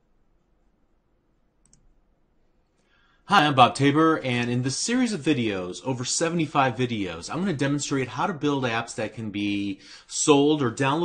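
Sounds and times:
faint clicks: 1.6 - 2.0.

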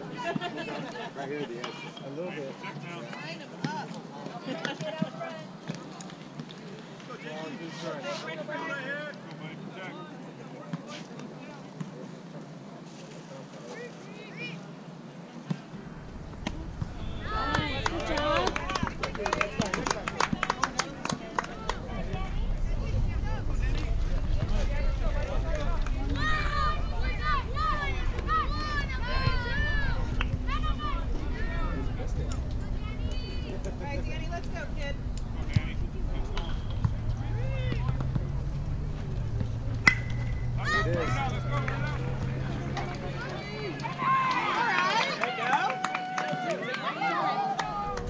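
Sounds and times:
sharp hand claps: 17.4 - 21.8
young voices shouting and cheering: 24.8 - 31.9, 40.3 - 48.0
bat cracking a ball: 39.8 - 40.6.

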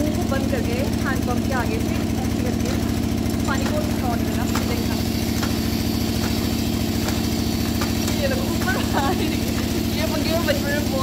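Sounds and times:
engine idling: 0.0 - 11.0
woman laughing: 8.3 - 9.8.

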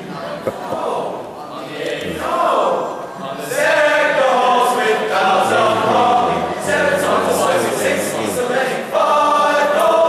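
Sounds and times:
male choir singing: 0.8 - 10.0.

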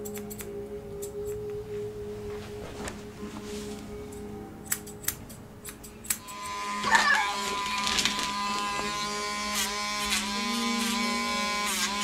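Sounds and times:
scissors snipping hair: 0.0 - 1.4, 4.1 - 8.9, 11.6 - 12.0.

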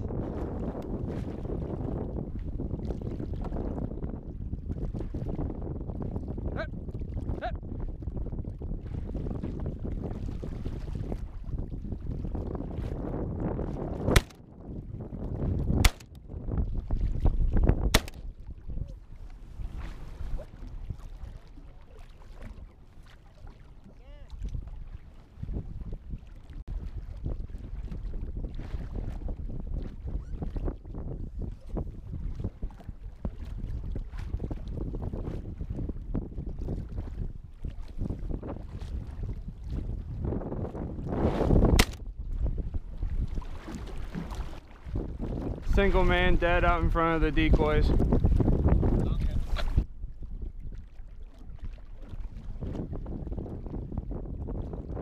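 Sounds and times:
wind rumbling on microphone: 0.0 - 55.0
waves against a boat: 6.2 - 55.0
shotgun shots: 14.1 - 14.4, 15.8 - 16.1, 17.9 - 18.2, 41.8 - 42.0.

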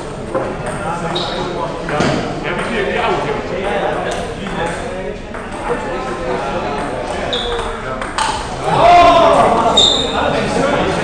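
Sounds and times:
general voices: 0.0 - 11.0
table tennis balls striking bats: 5.3 - 8.6.

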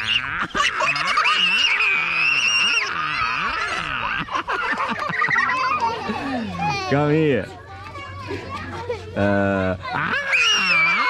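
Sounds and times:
children chattering: 0.0 - 11.0.

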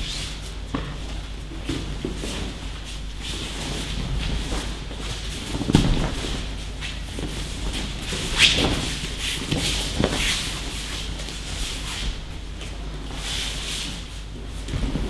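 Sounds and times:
bodies thudding on mats: 3.9 - 10.6, 14.6 - 15.0.

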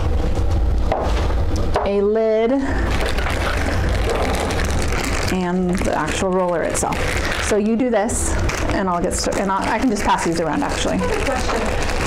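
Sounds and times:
rustling: 2.8 - 7.6, 8.4 - 12.0.

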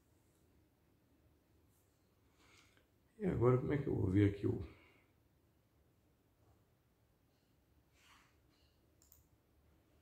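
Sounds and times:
small click: 9.0 - 9.3.

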